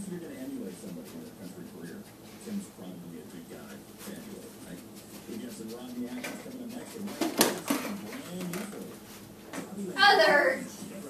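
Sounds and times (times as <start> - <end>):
radio talk show: 0.0 - 11.0.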